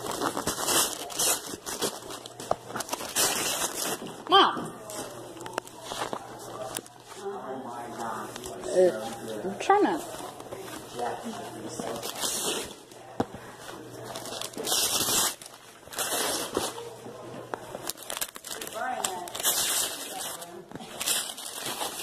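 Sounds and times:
wrapping paper crinkling and tearing: 0.0s - 13.1s, 13.8s - 22.0s.

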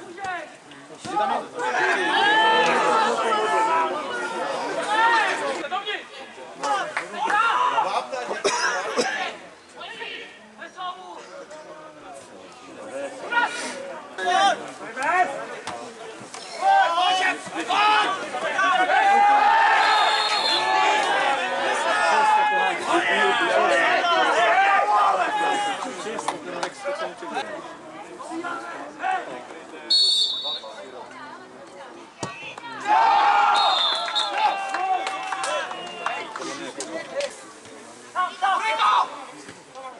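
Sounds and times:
voices shouting and talking: 0.0s - 39.9s
men shouting and calling: 0.1s - 8.4s, 16.6s - 26.2s.

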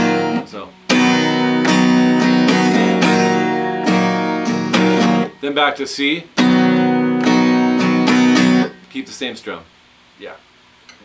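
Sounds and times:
acoustic guitar strumming chord: 0.0s - 5.7s, 6.3s - 8.9s.

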